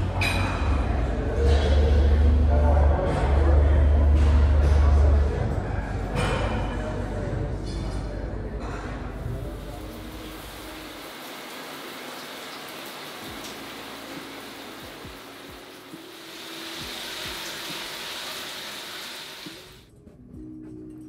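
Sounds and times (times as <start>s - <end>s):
shower water spray: 9.4s - 19.9s.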